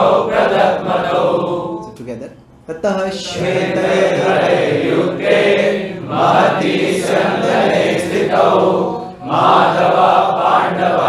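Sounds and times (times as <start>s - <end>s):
group chanting in unison: 0.0s - 1.9s, 3.2s - 11.0s.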